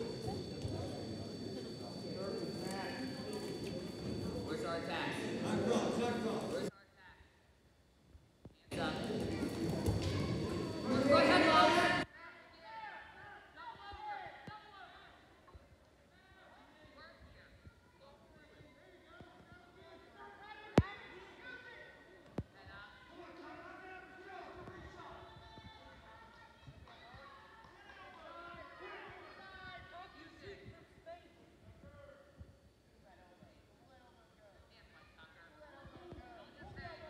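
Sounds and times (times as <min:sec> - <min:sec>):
distant echoing voices calling out: 0:00.0 - 0:06.7.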